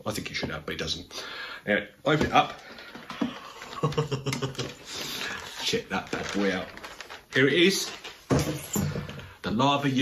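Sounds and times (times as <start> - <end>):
man laughing: 3.2 - 4.8.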